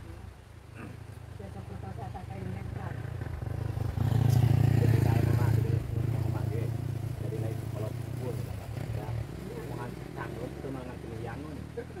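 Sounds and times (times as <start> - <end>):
small motorcycle passing: 2.4 - 12.0.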